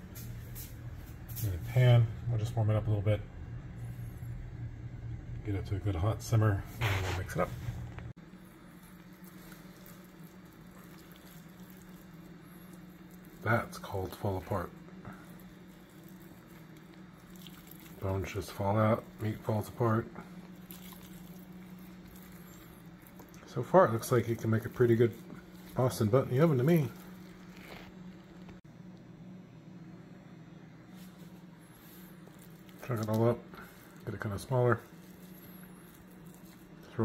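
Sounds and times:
steady low hum: 0.0 - 37.0
meat squishing being pulled apart: 8.9 - 13.4, 15.4 - 18.0, 20.4 - 23.4.

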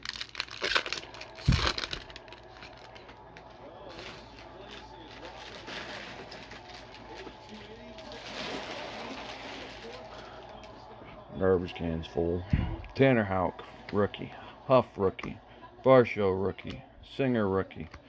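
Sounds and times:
wrapper crinkling and tearing: 0.0 - 10.8.

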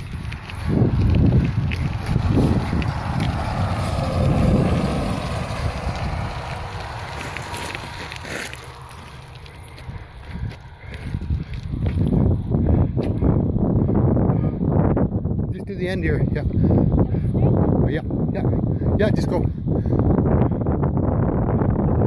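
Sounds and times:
bicycle tyres rolling on gravel: 0.0 - 13.2
wind buffeting microphone: 0.0 - 22.0.

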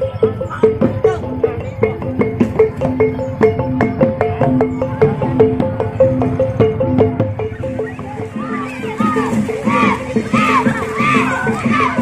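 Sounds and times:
gamelan music: 0.0 - 12.0.

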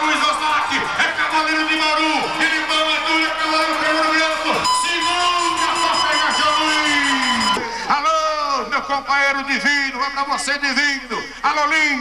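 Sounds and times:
announcer calling over loudspeakers: 0.0 - 12.0.

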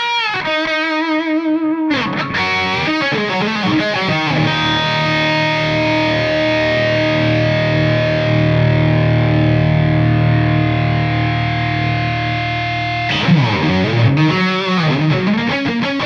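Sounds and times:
distorted electric guitar chord: 1.9 - 16.0.

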